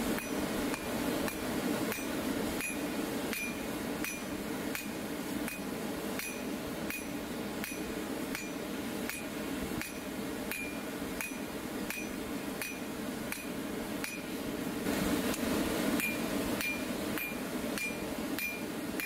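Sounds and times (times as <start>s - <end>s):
steady low hum: 0.0s - 19.0s
hammer striking steel on anvil: 0.2s - 14.3s, 16.0s - 19.0s.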